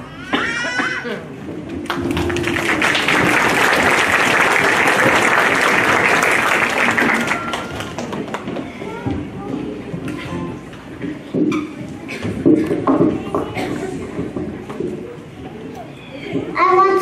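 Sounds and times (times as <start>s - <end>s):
audience clapping and cheering: 1.8s - 8.8s.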